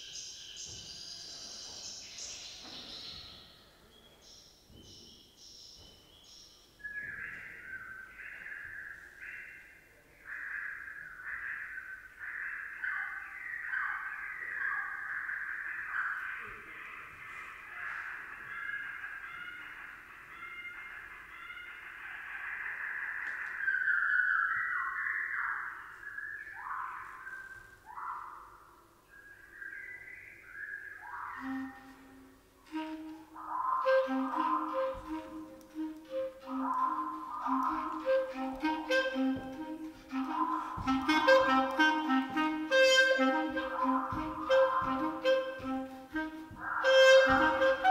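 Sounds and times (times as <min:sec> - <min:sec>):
slowed bird song whistles: 0:06.8 - 0:19.6, 0:20.4 - 0:38.2
low clarinet notes: 0:31.4 - 0:47.9.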